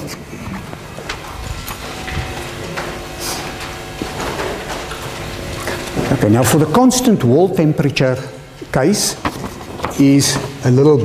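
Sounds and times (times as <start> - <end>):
steady room hum: 0.0 - 11.0
footsteps: 0.2 - 6.7
paper rustling: 9.2 - 10.6.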